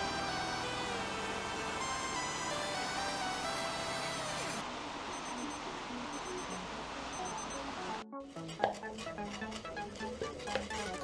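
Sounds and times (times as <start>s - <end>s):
background music: 0.0s - 4.6s, 5.2s - 11.0s
kitchen timer alarm beeping: 5.1s - 7.7s.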